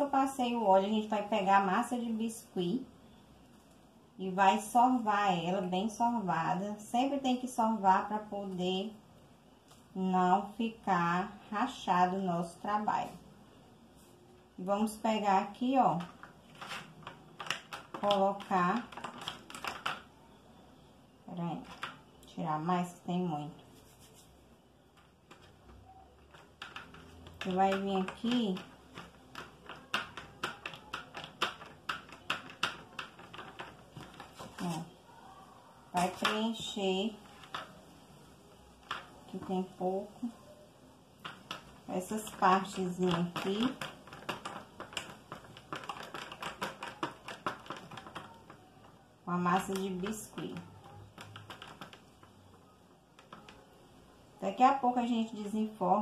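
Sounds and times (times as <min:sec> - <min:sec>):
plastic mould clicking and crackling: 0:15.3 - 0:20.4, 0:21.6 - 0:22.3, 0:24.8 - 0:35.0, 0:35.9 - 0:54.4.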